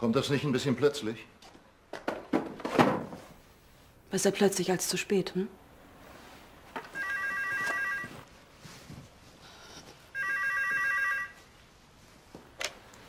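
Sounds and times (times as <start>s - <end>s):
telephone ringing: 6.9s - 8.3s, 10.2s - 11.4s.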